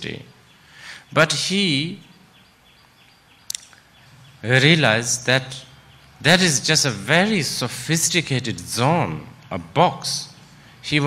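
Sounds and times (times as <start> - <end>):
sharp click: 3.5 - 3.8.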